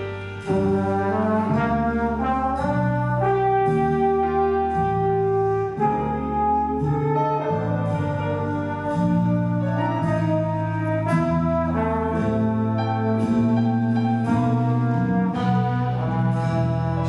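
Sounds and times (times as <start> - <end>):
big band playing slow ballad: 0.0 - 17.0
brass sustained chords: 0.0 - 17.0.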